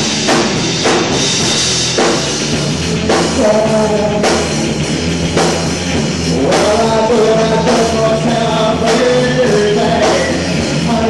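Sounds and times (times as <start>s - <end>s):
distorted electric guitars: 0.0s - 11.0s
drum kit: 0.0s - 11.0s.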